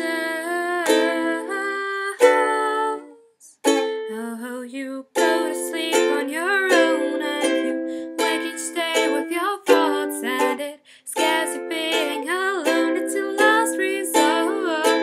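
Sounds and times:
ukulele strumming chords: 0.0 - 4.2, 5.2 - 10.6, 11.2 - 15.0
woman singing: 0.0 - 15.0.

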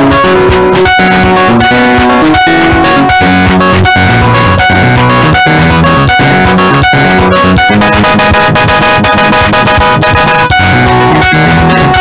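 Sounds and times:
steady drumbeat: 0.0 - 12.0
sustained keyboard chord: 0.0 - 12.0.

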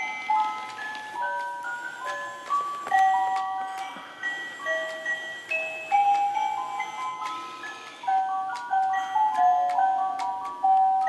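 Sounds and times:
toy playing bell-like electronic tune: 0.0 - 11.0.

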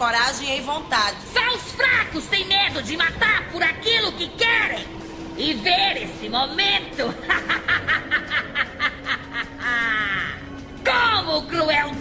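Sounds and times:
background music drone: 0.0 - 12.0
exaggerated villain's laugh: 7.2 - 10.4.

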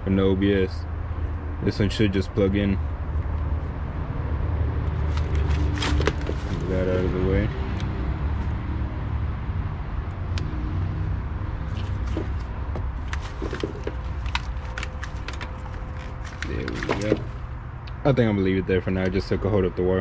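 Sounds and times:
plastic connectors clicking and rattling: 13.0 - 17.4.

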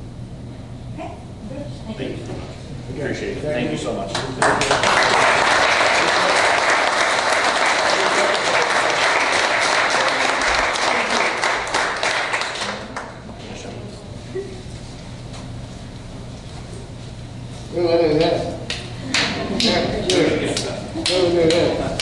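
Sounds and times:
audience applauding: 4.2 - 13.2.

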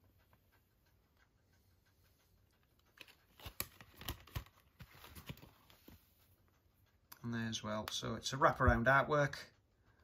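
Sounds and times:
paper rustling: 3.0 - 6.1.

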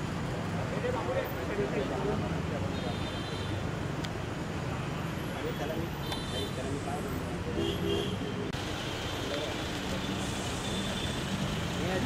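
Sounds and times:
road vehicle engine rumble: 0.0 - 12.0.

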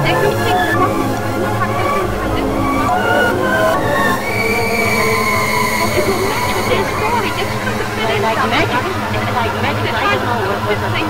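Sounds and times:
eerie ambient horror music: 0.0 - 11.0.

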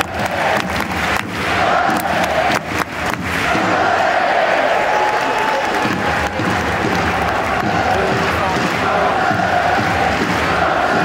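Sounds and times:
stadium crowd chanting: 0.0 - 11.0
low rhythmic beat: 5.7 - 11.0.

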